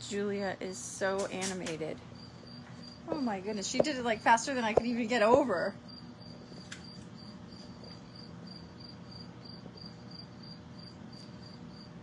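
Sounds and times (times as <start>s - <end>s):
aquarium filter pump hum: 1.8s - 12.0s.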